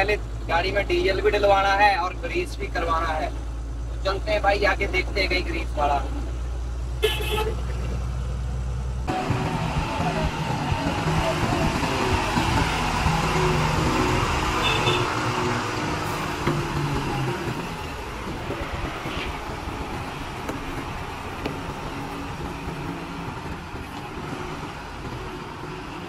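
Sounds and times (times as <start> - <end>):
diesel truck engine running: 0.0 - 26.0.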